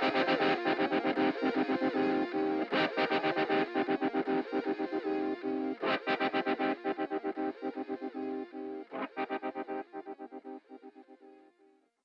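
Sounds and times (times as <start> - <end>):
rock guitar with effects: 0.0 - 11.0.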